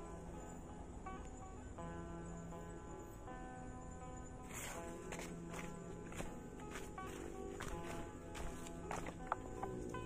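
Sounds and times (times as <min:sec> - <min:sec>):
background music: 0:00.0 - 0:10.0
footsteps on dry leaves: 0:04.5 - 0:09.6.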